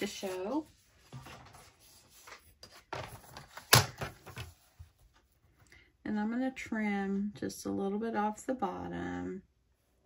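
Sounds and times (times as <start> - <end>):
paper rustling: 0.0 - 5.3.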